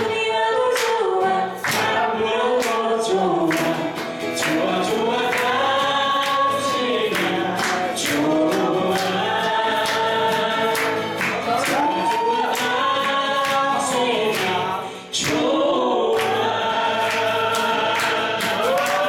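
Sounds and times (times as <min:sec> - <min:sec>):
man and woman singing a duet: 0:00.0 - 0:19.0
strummed acoustic guitars: 0:00.0 - 0:19.0.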